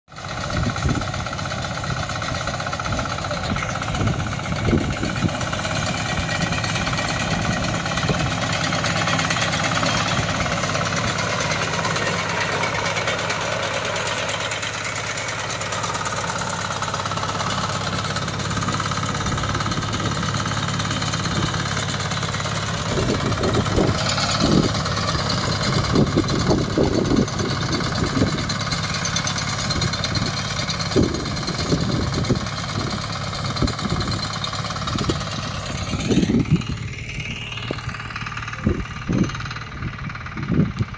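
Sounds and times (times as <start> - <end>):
cutter bar mowing crop: 0.1 - 39.8
reaper engine running: 0.1 - 40.9.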